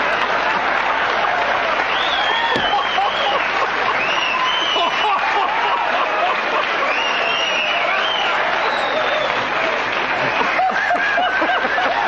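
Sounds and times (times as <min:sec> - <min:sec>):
studio audience applauding: 0:00.0 - 0:12.0.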